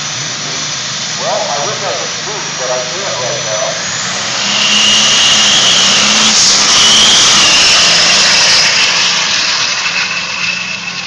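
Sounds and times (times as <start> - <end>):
diesel engine at full throttle: 0.0 - 11.0
steady high whistle: 4.2 - 11.0.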